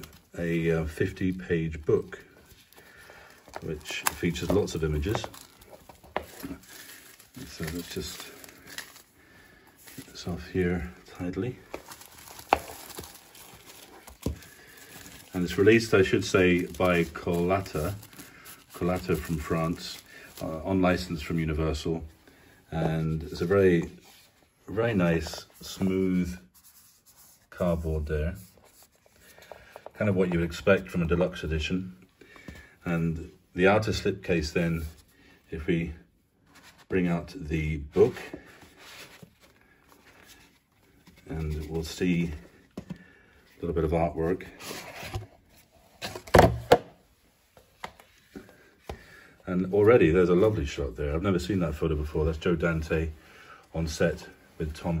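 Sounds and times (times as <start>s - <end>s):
plastic wrap rustling: 0.0s - 21.8s
plastic wrap crackle: 2.5s - 9.3s, 9.9s - 21.3s.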